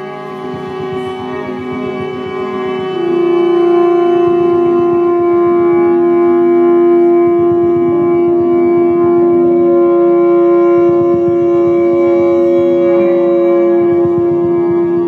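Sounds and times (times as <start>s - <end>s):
folk music on reed instrument: 0.0s - 15.0s.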